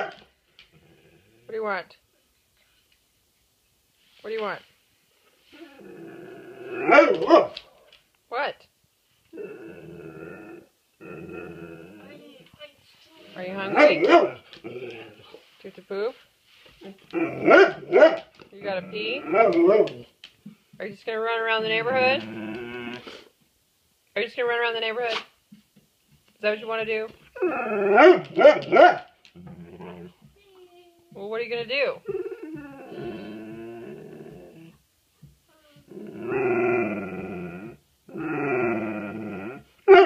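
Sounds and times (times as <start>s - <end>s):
dog grumbling: 5.5s - 7.2s, 9.3s - 12.3s, 13.4s - 15.4s, 17.1s - 18.0s, 21.5s - 23.3s, 29.4s - 30.3s, 32.0s - 34.8s, 35.8s - 39.8s
dog groaning: 21.5s - 23.2s, 29.4s - 30.3s, 32.0s - 34.8s
dog vocalizing: 21.6s - 23.1s.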